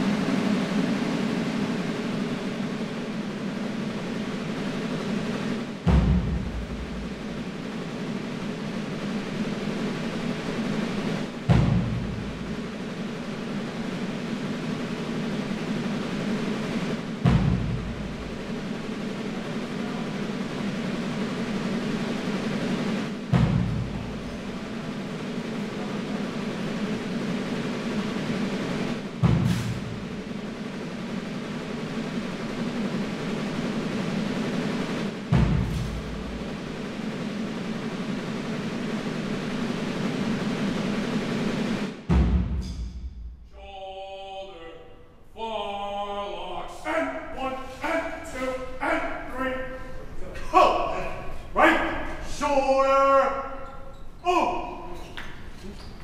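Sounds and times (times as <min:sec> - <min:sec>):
deep drum strokes: 0:00.0 - 0:44.0.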